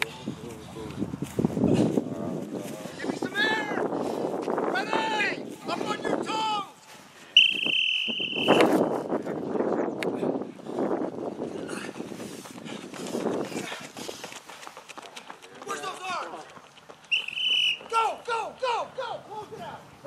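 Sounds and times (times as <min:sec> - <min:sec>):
rough outdoor noise: 0:00.0 - 0:20.0
whistle shrill blast: 0:07.4 - 0:08.9, 0:17.1 - 0:17.9.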